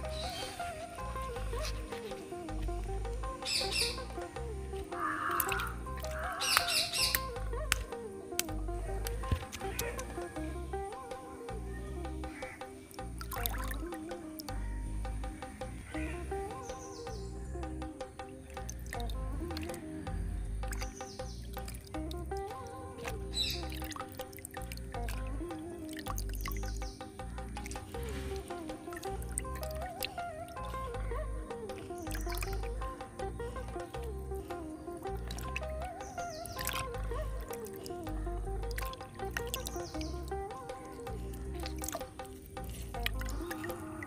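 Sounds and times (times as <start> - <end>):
background music with steady beat: 0.0 - 44.0
water dripping and splashing: 0.0 - 44.0
high bird chirps: 3.4 - 4.3, 4.9 - 7.4, 15.3 - 19.0, 20.3 - 21.9, 34.6 - 37.0, 39.0 - 40.3
bird harsh call: 5.0 - 7.2.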